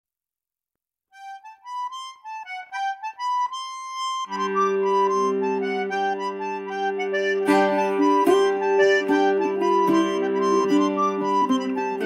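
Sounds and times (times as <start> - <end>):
wind instrument playing quick melody: 1.3 - 12.0.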